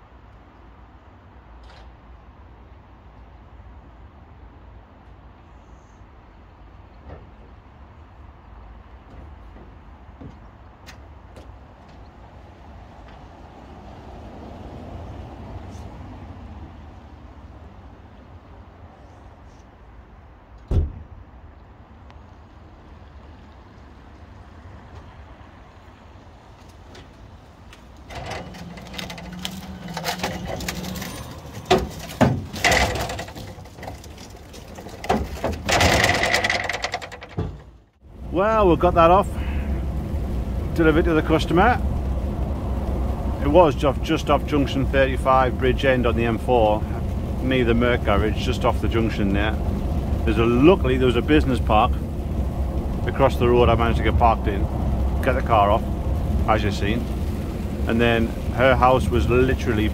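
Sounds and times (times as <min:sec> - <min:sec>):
low rumble: 0:28.0 - 0:34.7, 0:38.1 - 0:59.9
metal clanks and knocks: 0:28.1 - 0:37.8.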